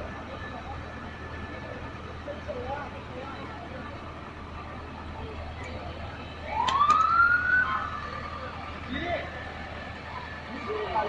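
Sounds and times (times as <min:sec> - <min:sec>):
siren wind-up: 0:06.5 - 0:07.9.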